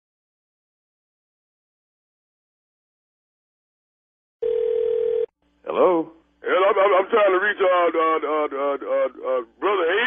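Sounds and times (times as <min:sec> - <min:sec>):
telephone ringback tone: 0:04.4 - 0:05.3.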